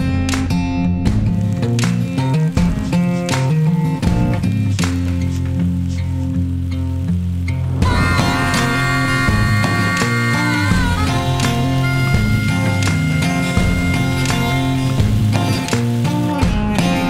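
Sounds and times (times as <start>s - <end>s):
bass-heavy groove music: 0.0s - 17.0s.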